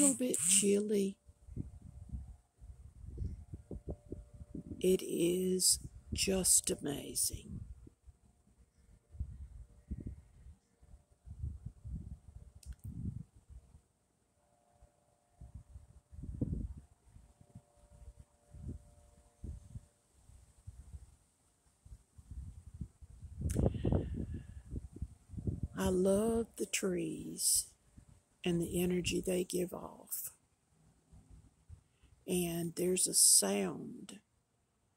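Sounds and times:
wind gusting against microphone: 1.4 - 8.1, 9.1 - 10.6, 11.2 - 13.6, 15.4 - 17.6, 19.4 - 19.8, 22.2 - 26.4.

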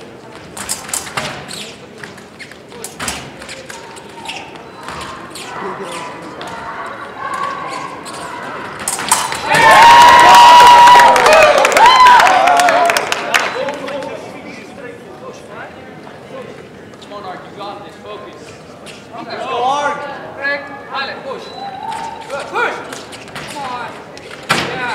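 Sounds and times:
fencing footwork and blade clicks: 0.6 - 6.6, 7.3 - 9.4.

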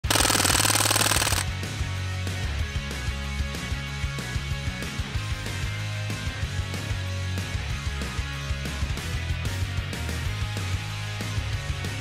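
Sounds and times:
rifle rapid shots: 0.0 - 1.5.

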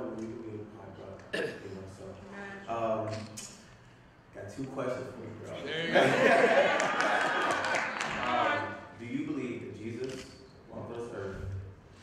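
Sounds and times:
man speaking into a microphone: 0.0 - 3.4, 8.6 - 11.8.

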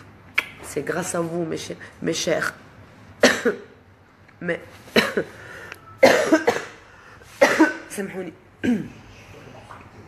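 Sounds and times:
woman coughing: 3.2 - 3.8, 4.9 - 5.4, 6.0 - 9.0.

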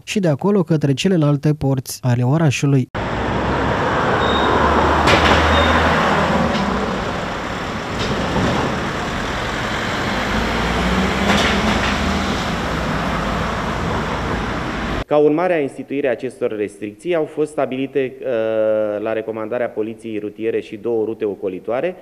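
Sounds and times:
road traffic driving past: 3.0 - 15.0
sharp knocks: 4.8 - 9.3, 10.8 - 13.1.

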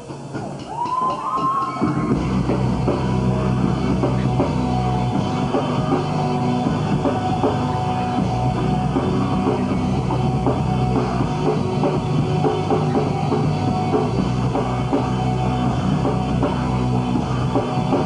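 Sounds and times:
electric guitars: 0.0 - 18.0
fast drum kit: 0.0 - 18.0
bass guitar: 1.8 - 18.0.

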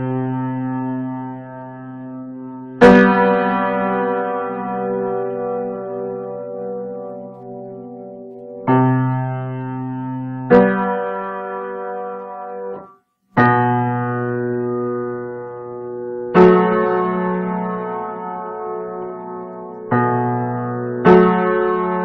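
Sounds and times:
piano chords ringing: 0.0 - 22.0.

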